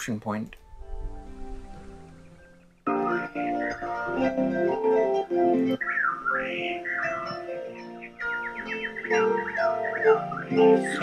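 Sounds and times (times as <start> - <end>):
birds calling: 1.5 - 11.0
plucked harp music: 2.9 - 11.0.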